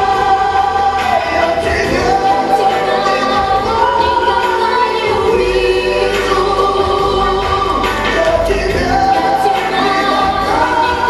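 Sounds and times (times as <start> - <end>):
choral singing: 0.0 - 11.0
low bass: 5.1 - 11.0.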